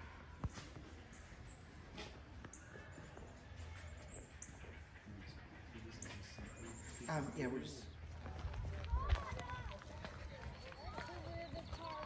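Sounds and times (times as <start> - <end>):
distant people talking: 0.0 - 12.0
footsteps on brick path: 6.1 - 12.0.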